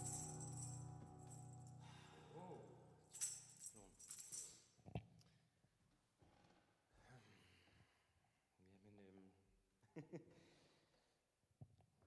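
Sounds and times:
harmonica chord: 0:00.0 - 0:03.4
soft jingling rattles: 0:03.1 - 0:04.8.

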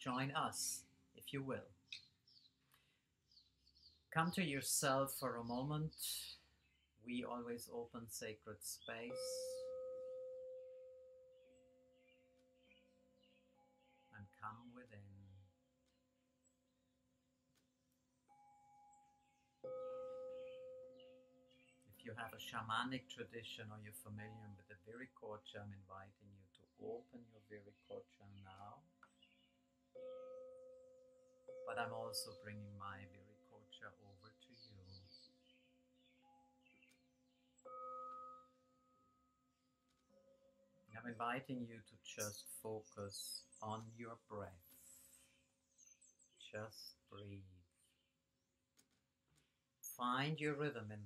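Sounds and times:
faint bird chirps: 0:00.0 - 0:09.9, 0:10.6 - 0:16.8, 0:18.3 - 0:38.6, 0:39.5 - 0:48.2
meditation music ringing tones: 0:00.1 - 0:15.8, 0:18.2 - 0:23.2, 0:28.6 - 0:46.9
bell-like chime ringing: 0:09.1 - 0:11.7, 0:18.3 - 0:21.5, 0:30.0 - 0:32.5, 0:37.6 - 0:39.4.

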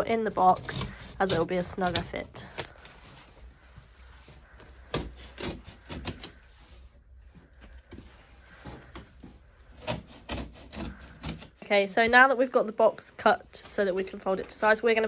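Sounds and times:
scissors cutting cardboard: 0:00.0 - 0:02.9, 0:04.2 - 0:06.9, 0:08.9 - 0:11.5.

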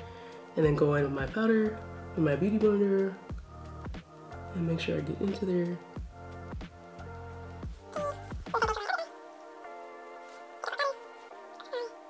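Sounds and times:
background music with drum beat: 0:03.1 - 0:08.9.

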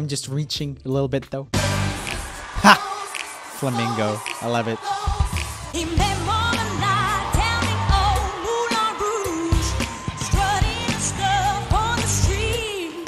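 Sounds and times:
woman singing with vibrato: 0:04.8 - 0:13.0.

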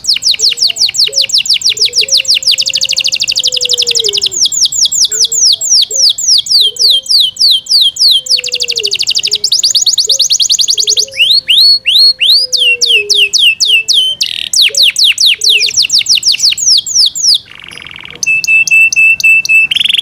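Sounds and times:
canary singing: 0:00.0 - 0:20.0.

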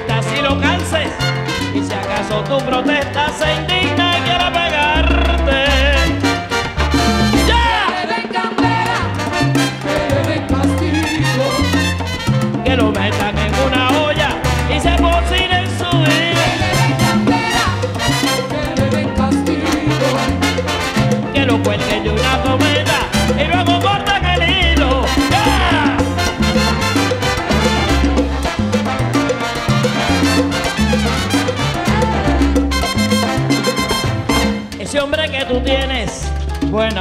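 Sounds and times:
salsa band playing: 0:00.0 - 0:37.0
steady percussion: 0:00.0 - 0:37.0
stepping bass line: 0:03.5 - 0:07.9, 0:21.4 - 0:37.0.

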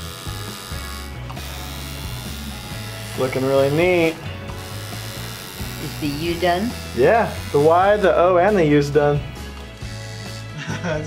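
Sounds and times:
tattoo machine buzzing: 0:00.0 - 0:11.0.

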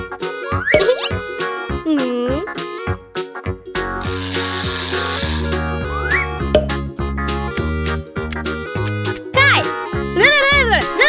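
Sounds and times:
cartoon background music: 0:00.0 - 0:11.0
fishing reel whirring and rattling: 0:04.0 - 0:05.6.

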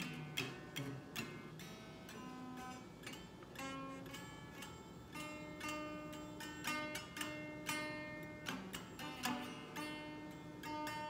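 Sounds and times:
clean electric guitar notes: 0:00.0 - 0:11.0.

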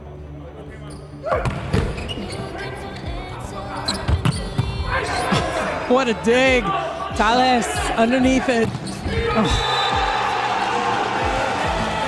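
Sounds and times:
steady music: 0:04.7 - 0:12.0
players shouting: 0:04.9 - 0:12.0.

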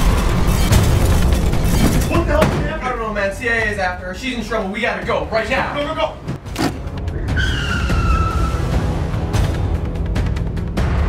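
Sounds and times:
car tyres squealing: 0:07.1 - 0:09.0.

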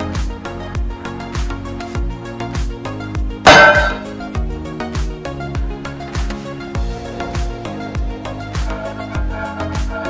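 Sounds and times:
background music with steady beat: 0:00.0 - 0:10.0
boot stamping on steel plate: 0:03.5 - 0:04.0.

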